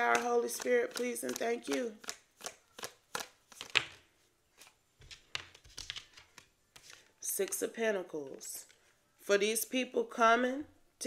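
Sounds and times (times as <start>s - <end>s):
cards being shuffled: 0.0s - 7.7s.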